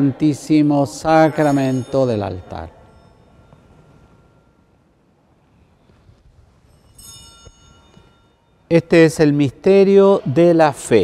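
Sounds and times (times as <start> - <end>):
small bell ringing: 1.2 - 5.0, 6.6 - 8.9.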